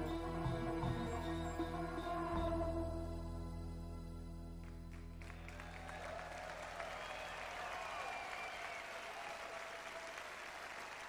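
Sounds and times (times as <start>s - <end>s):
droning ambient instrumental: 0.0s - 5.8s
audience applauding and cheering: 4.8s - 11.0s.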